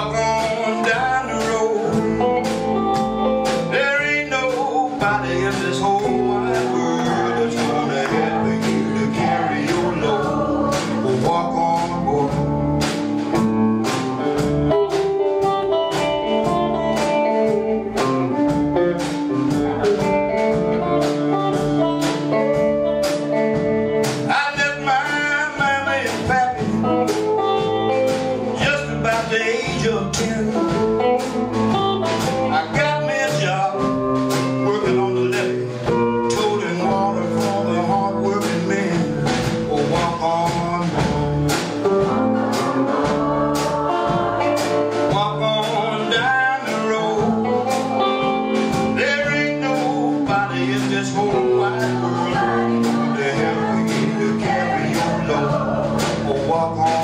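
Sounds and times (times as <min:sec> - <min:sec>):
bending guitar lead line: 0:00.0 - 0:57.0
gospel blues band music: 0:00.0 - 0:57.0
person singing: 0:00.0 - 0:57.0.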